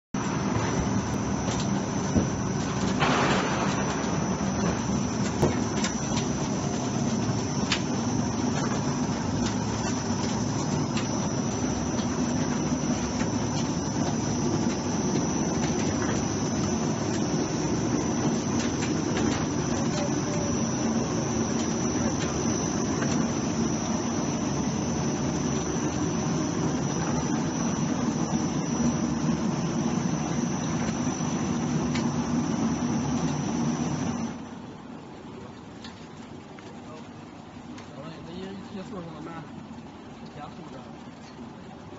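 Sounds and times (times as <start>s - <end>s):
machine droning: 0.2s - 35.3s
faint high whine: 0.2s - 36.0s.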